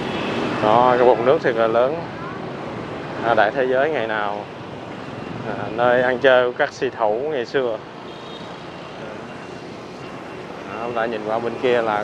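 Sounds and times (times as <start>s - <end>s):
motorbike passing: 0.0s - 6.6s
street traffic noise: 0.0s - 12.0s.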